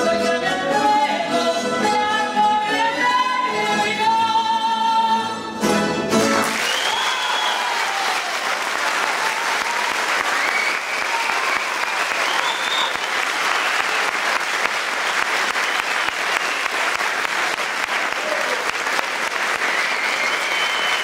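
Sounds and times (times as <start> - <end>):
audience applauding: 6.3 - 21.0.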